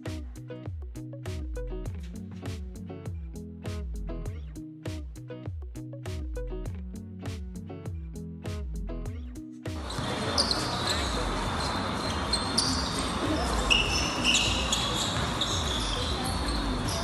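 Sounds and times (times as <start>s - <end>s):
background music: 0.0s - 14.2s
basketball bouncing on court: 9.8s - 17.0s
crowd murmur: 9.8s - 17.0s
sneakers squeaking: 9.8s - 17.0s.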